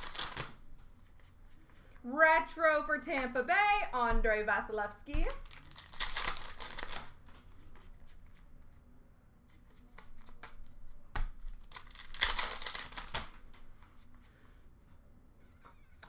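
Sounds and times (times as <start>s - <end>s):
foil wrapper tearing and crinkling: 0.0s - 0.6s, 5.4s - 7.2s, 11.5s - 13.4s
cards being handled: 0.0s - 2.0s, 5.2s - 8.8s, 9.5s - 14.3s.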